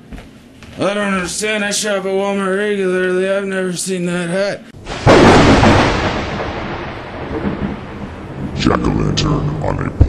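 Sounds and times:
thunder rumble: 4.8s - 10.0s.

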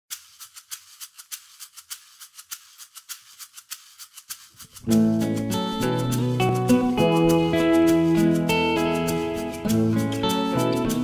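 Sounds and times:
shaker rhythm: 0.1s - 11.0s.

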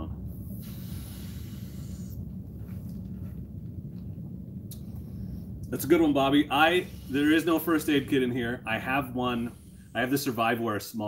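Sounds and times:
low hum: 0.0s - 11.0s
person exhaling breathily: 0.3s - 2.4s, 6.5s - 10.4s.

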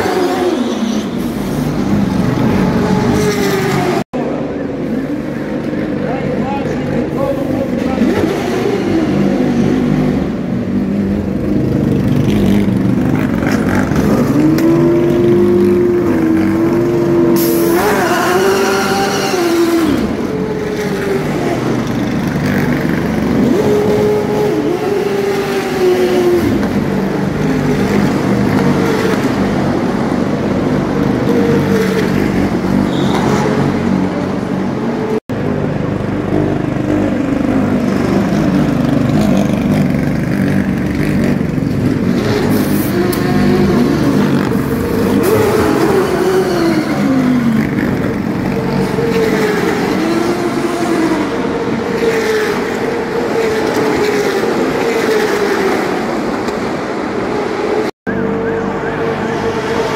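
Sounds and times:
racing car engines revving: 0.0s - 59.9s.

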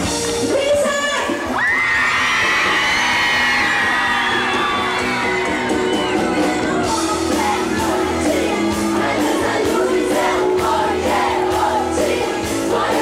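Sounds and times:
live pop-rock band music: 0.0s - 1.6s, 3.4s - 13.0s
crowd cheering and whooping: 1.4s - 9.2s.

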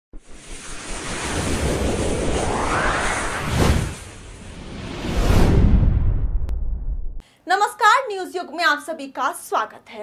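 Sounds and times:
whoosh with low rumble: 0.2s - 7.2s.

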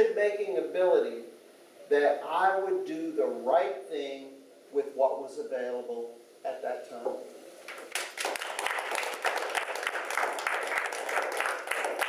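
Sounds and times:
people applauding: 7.7s - 12.0s.

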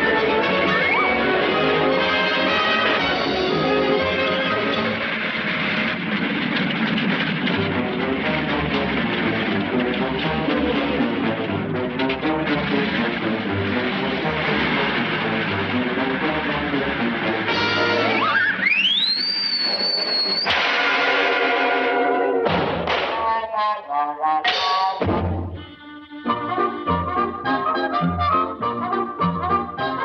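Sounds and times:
cartoon soundtrack music: 0.0s - 5.1s, 7.6s - 19.4s, 20.6s - 30.0s
cartoon whistle sliding upward: 18.0s - 20.5s.

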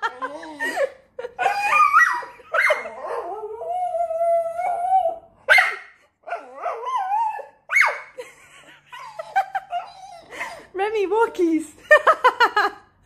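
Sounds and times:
dog howling: 1.4s - 5.3s, 6.2s - 7.9s
dog barking and yipping: 5.5s - 8.2s.

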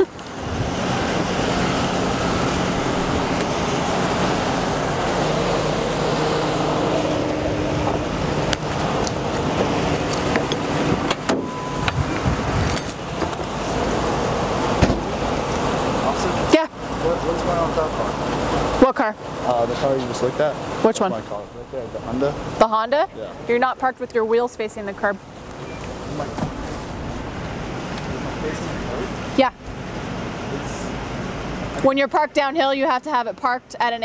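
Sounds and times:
car engine idling: 0.0s - 33.2s
light metallic jingling: 9.0s - 10.7s, 12.6s - 14.0s.

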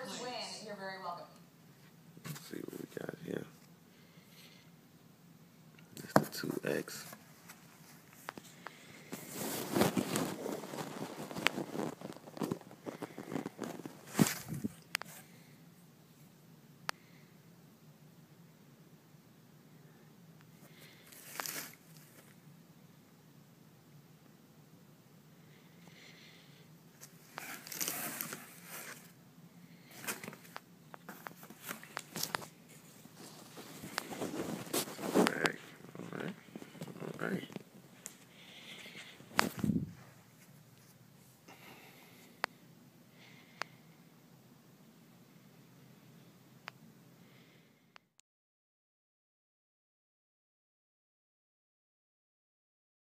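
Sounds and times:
rustling of clothes and cardboard: 6.0s - 15.4s, 21.0s - 22.3s, 27.0s - 29.2s, 29.8s - 41.0s.

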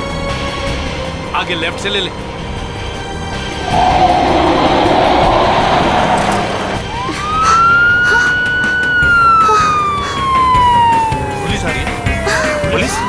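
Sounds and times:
vehicle rushing past: 3.5s - 7.4s
police siren wailing: 3.6s - 13.0s.

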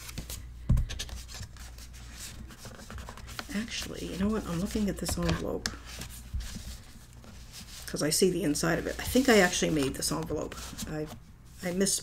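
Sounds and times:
paper rustling: 0.0s - 12.0s.

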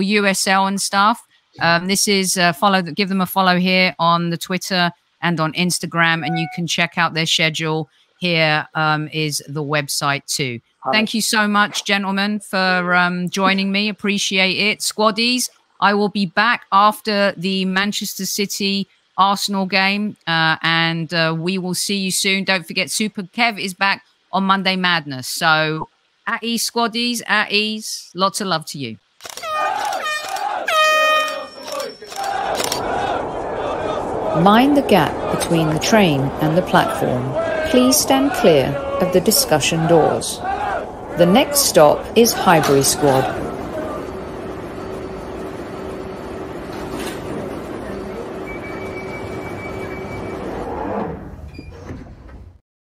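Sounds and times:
underground train rumble and whine: 29.3s - 52.6s
air horn blasts: 29.4s - 32.4s
sliding doors closing: 31.8s - 52.6s
steady rushing noise: 32.1s - 47.8s.

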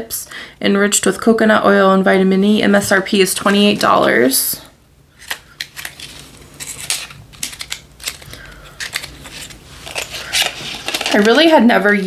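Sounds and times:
packaging crackling and clicking: 5.2s - 12.0s.

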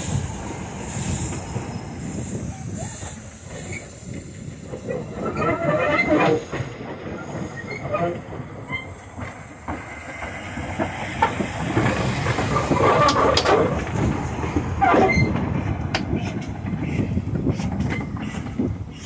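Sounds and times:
hissing steam: 0.0s - 19.0s
steam locomotive passing: 0.0s - 19.0s
wheels clattering over rails: 3.5s - 19.0s.

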